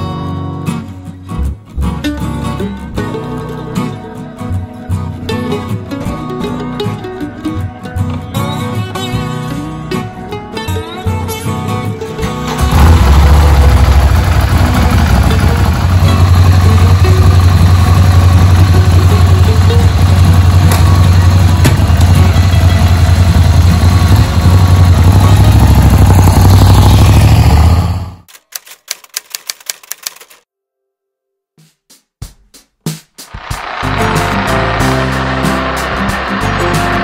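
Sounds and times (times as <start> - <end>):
motorcycle engine running: 12.4 - 28.3, 33.3 - 37.0
rapid clicks: 28.3 - 30.4.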